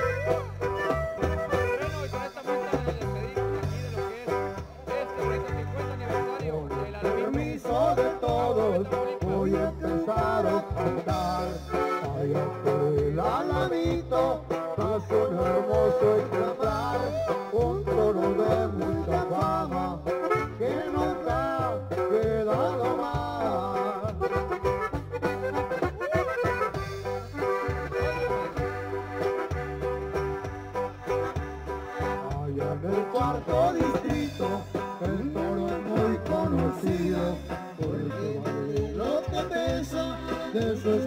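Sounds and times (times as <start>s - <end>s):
accordion melody: 0.0s - 41.0s
bass beat: 0.0s - 41.0s.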